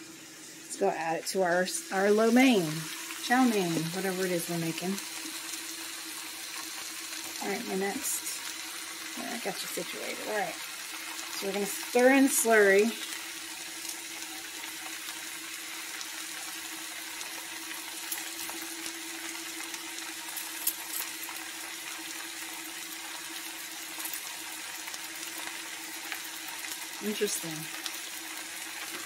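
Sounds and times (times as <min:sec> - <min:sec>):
food sizzling in a frying pan: 0:00.0 - 0:29.0.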